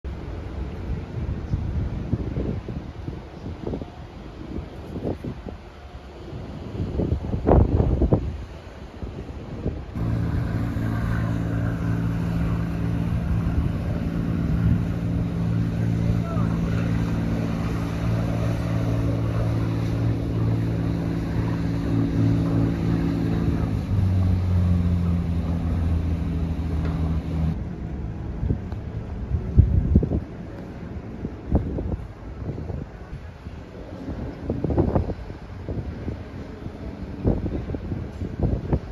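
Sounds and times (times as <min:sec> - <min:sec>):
wind buffeting microphone: 0:00.1 - 0:38.9
boat engine drone: 0:09.9 - 0:38.9.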